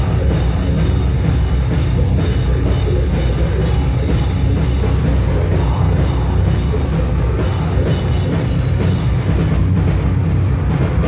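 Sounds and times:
metal band playing live: 0.0 - 11.0.

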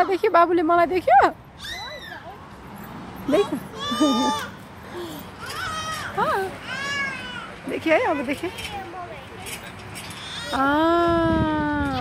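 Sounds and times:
young child's high-pitched calls: 1.6 - 2.4.

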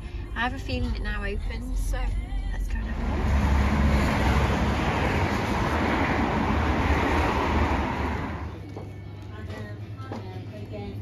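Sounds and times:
road traffic noise: 2.5 - 9.3.

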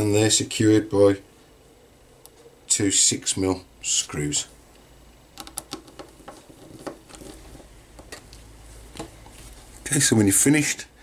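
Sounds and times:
faint clicks and light scrapes: 5.7 - 8.4.

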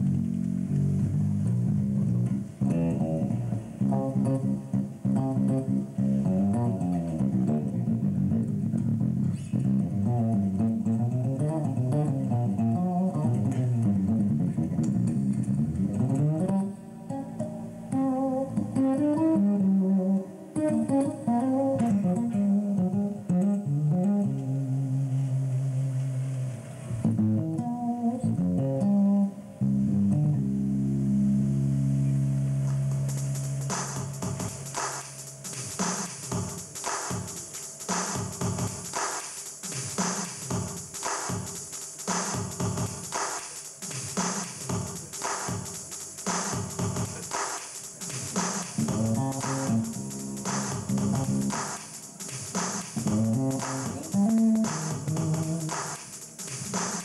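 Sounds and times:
electric bass guitar fingerstyle: 0.0 - 35.4, 48.7 - 51.9, 53.0 - 55.8.

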